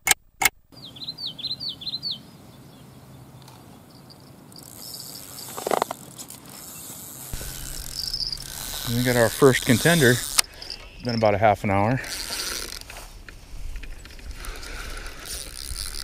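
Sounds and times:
small bird chirping: 0:00.8 - 0:05.5, 0:06.6 - 0:11.3
high steady hiss: 0:07.2 - 0:11.0
sharp ticks: 0:07.3 - 0:11.3.

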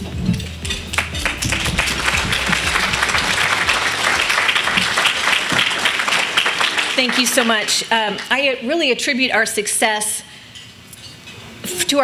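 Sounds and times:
audience applauding: 0:00.8 - 0:08.4.

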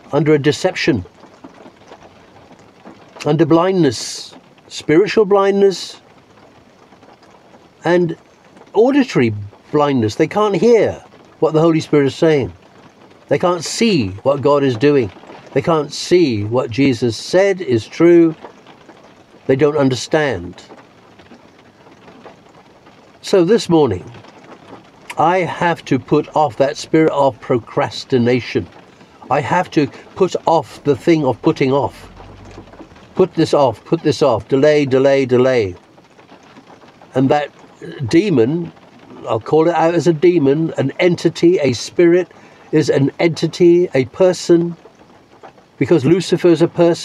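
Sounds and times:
light rain on a van roof: 0:00.0 - 0:47.0.

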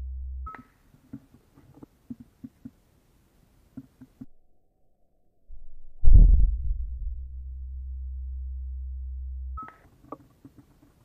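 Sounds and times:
steady low hum: 0:00.0 - 0:00.6, 0:05.6 - 0:09.7.

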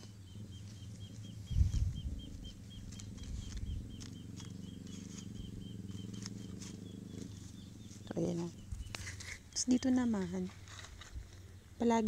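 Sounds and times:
small animal chirping: 0:00.0 - 0:10.4
palm leaves clicking and rustling: 0:00.0 - 0:11.5
low steady hum: 0:00.0 - 0:12.0.

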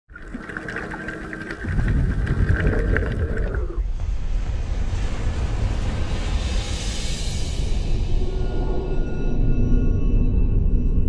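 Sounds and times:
quiet ticking crackle: 0:00.1 - 0:03.8.

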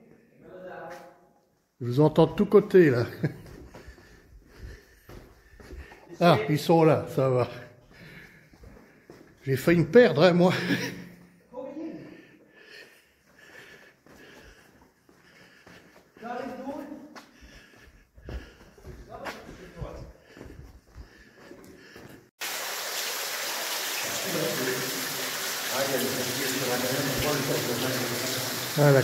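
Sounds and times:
faint footsteps in tunnel: 0:00.9 - 0:01.7, 0:03.0 - 0:09.9, 0:11.1 - 0:22.3
water cascade rushing: 0:22.4 - 0:29.0
distant men's voices echoing: 0:24.0 - 0:29.0.

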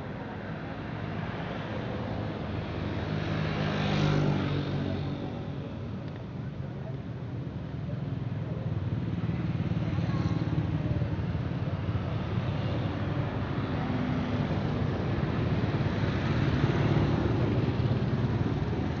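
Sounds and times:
cars passing: 0:00.0 - 0:06.0
motorcycles passing: 0:01.1 - 0:06.6, 0:07.2 - 0:19.0.

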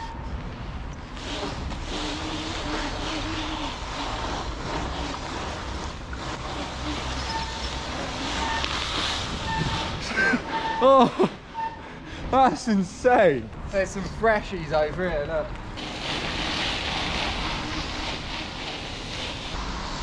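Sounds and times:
bike tyres rumbling on concrete: 0:00.5 - 0:10.1, 0:15.5 - 0:20.0.

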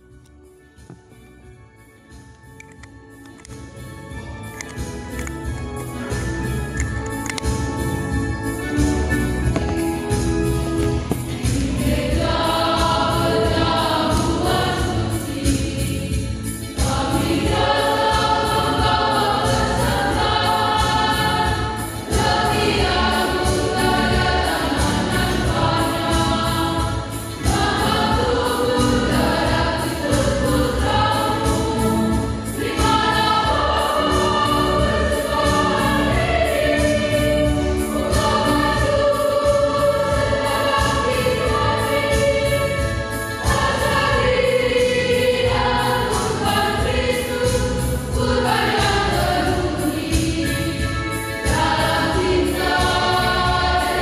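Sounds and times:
church choir singing a hymn: 0:04.7 - 0:54.0.

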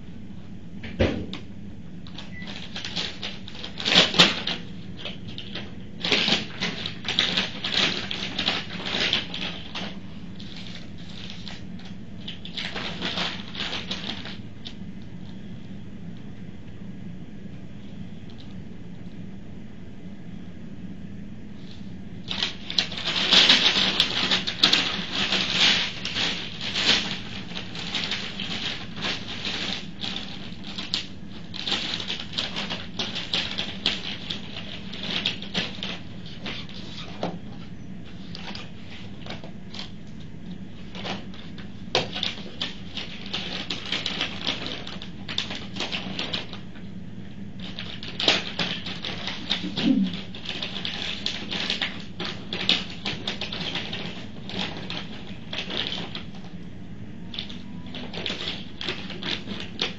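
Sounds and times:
paper and packaging rustling: 0:02.0 - 0:15.4, 0:21.6 - 0:46.9, 0:47.5 - 0:56.6, 0:57.2 - 0:59.9.

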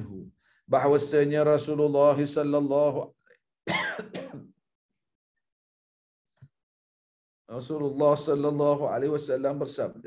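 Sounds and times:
man clearing his throat: 0:03.7 - 0:04.6.

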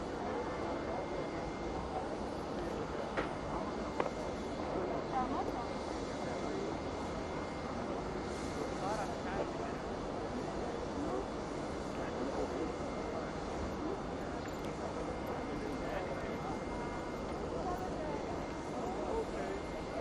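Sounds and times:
indistinct chatter of people: 0:00.0 - 0:20.0
parked airliner noise: 0:00.0 - 0:20.0.

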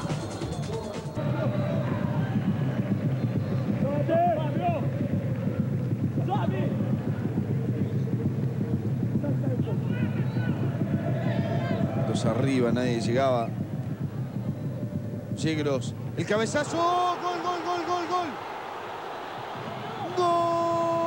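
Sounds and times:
stadium crowd din: 0:00.0 - 0:21.0.

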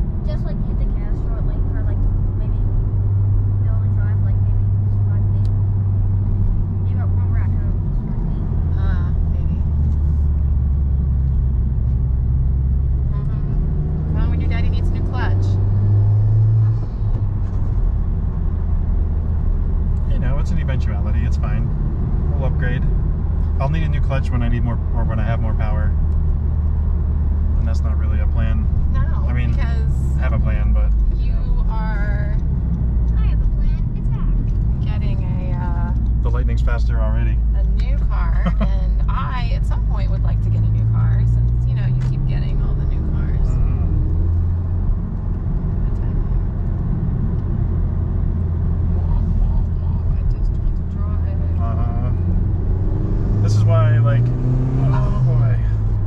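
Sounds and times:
car engine running inside cabin: 0:00.0 - 0:56.0.

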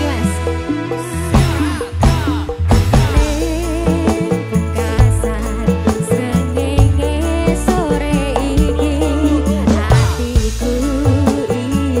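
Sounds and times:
deep bass: 0:00.0 - 0:12.0
live band playing: 0:00.0 - 0:12.0
woman singing with vibrato: 0:00.0 - 0:12.0
drum beat: 0:01.4 - 0:05.4.

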